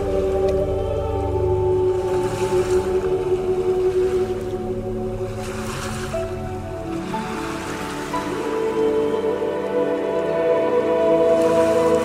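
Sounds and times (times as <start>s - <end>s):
soft instrumental music: 0.0s - 12.0s
ocean surf washing onto beach: 1.8s - 12.0s.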